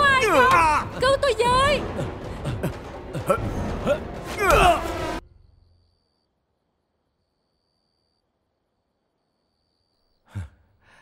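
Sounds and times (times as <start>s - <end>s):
man sighing: 10.2s - 11.0s.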